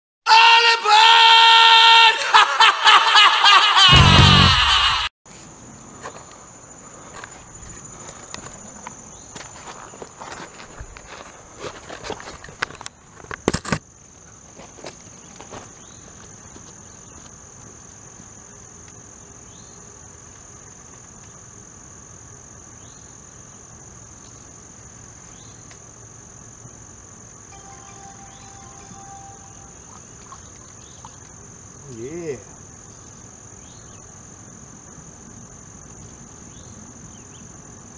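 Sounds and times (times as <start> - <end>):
insects droning: 0.3 - 37.9
intro music: 3.9 - 4.8, 27.5 - 30.0.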